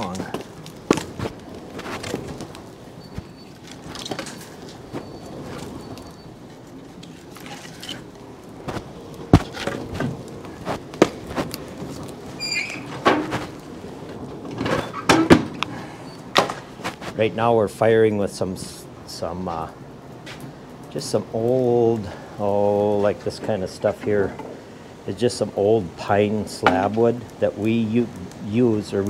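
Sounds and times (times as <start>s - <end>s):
firewood thunking: 0.0s - 17.2s, 26.5s - 27.1s
short squeak: 12.4s - 12.9s
firebox doors closing: 12.4s - 13.5s, 14.3s - 16.6s.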